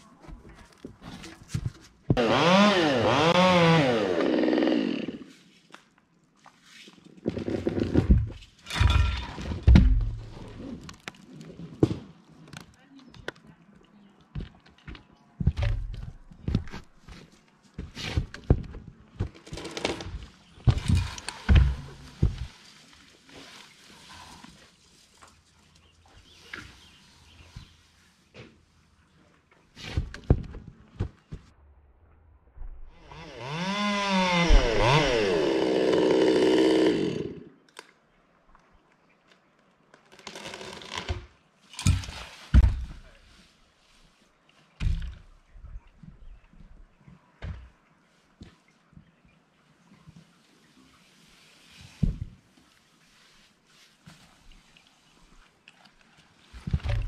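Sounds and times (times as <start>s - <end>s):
chainsaw revving: 2.2s - 5.3s, 33.0s - 37.5s
sharp knocks and thumps: 7.3s - 10.4s, 14.4s - 17.2s, 17.8s - 22.5s, 29.9s - 31.5s, 41.8s - 43.1s.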